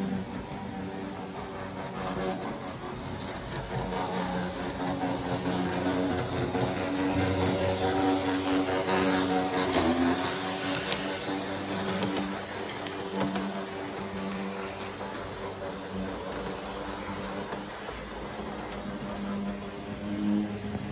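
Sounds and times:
wheels rumbling on rails: 0.0 - 20.9.

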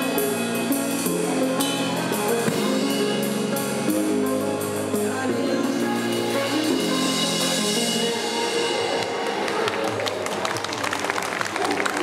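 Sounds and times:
drum kit with pop backing track: 0.0 - 10.2
audience clapping: 9.0 - 12.0.

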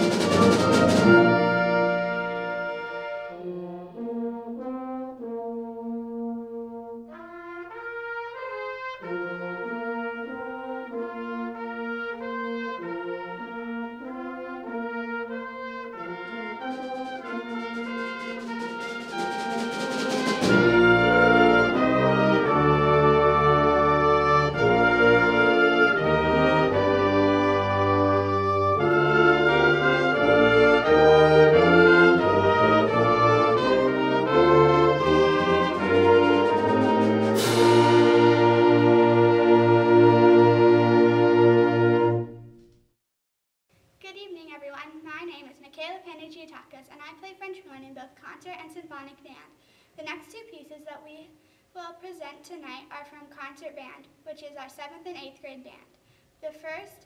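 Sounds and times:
percussion: 0.0 - 2.9, 16.2 - 23.4, 28.4 - 39.6
low timpani notes: 0.0 - 6.6, 7.3 - 42.6
wind band playing chords: 0.0 - 42.6
cymbal crash: 36.5 - 38.7.

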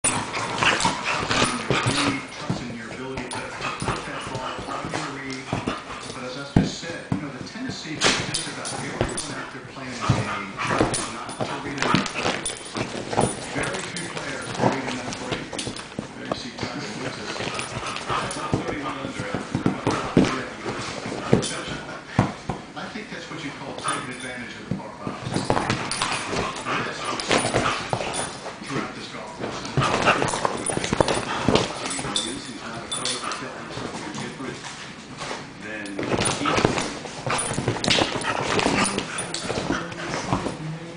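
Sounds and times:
scuffling bumps: 0.0 - 22.8, 23.6 - 40.7
dogs play-fighting: 0.0 - 40.9.

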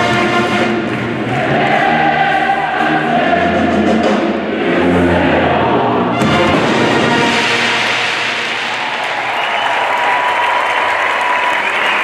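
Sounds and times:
choir singing sustained notes: 0.0 - 9.4.

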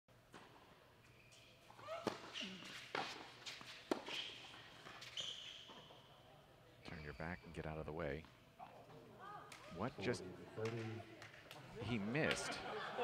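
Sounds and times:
shoe squeaks on court: 1.0 - 6.1, 6.8 - 7.7
racquet striking tennis ball: 2.0 - 4.2.

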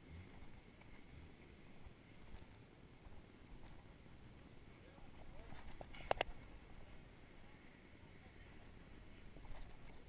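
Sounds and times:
light clicks: 5.5 - 6.4.

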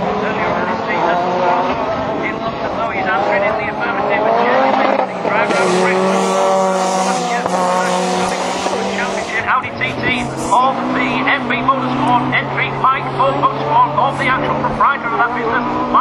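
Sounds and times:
racing car engines revving: 0.0 - 16.0.

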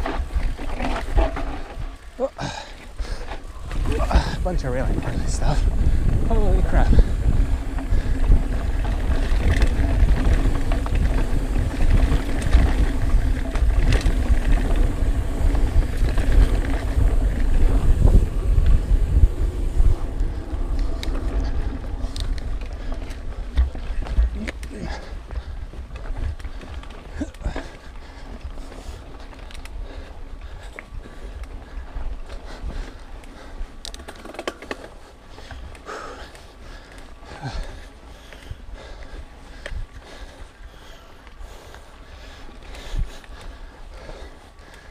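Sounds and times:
wind on microphone: 0.0 - 27.6
tyres rolling over dirt: 0.0 - 29.7
bike rattling and knocking: 0.0 - 44.9.

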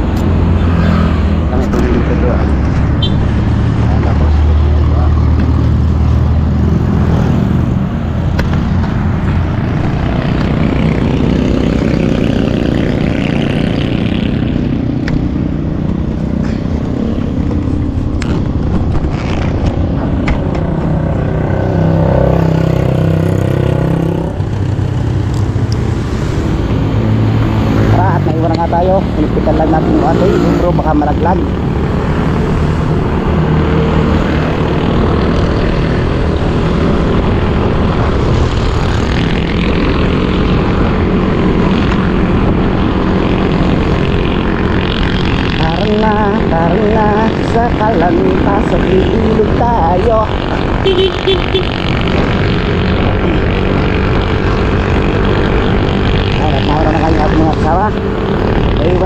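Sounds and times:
road and wind noise: 0.0 - 59.0.

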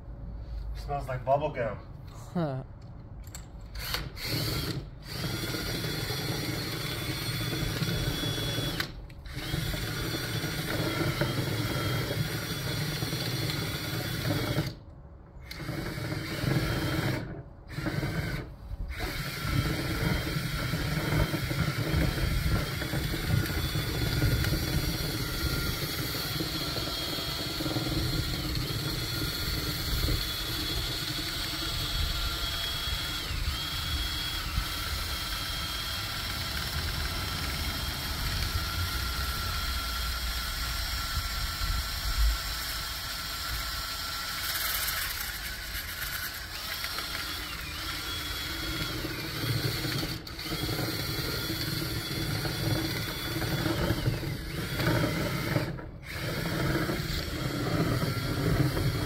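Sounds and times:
cordless drill whining: 3.6 - 14.8, 15.4 - 59.0.

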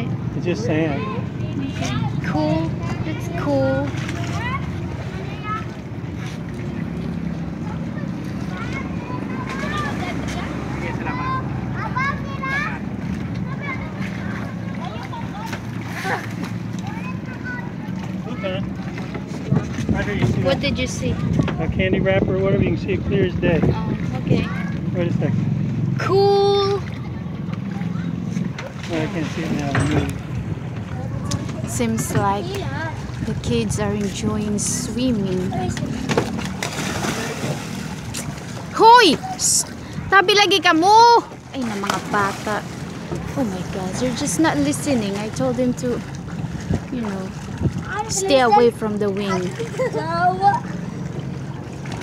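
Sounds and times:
sea water splashing: 0.0 - 21.6, 23.0 - 52.0
boat engine humming: 0.0 - 52.0
noisy water wash: 0.0 - 52.0.

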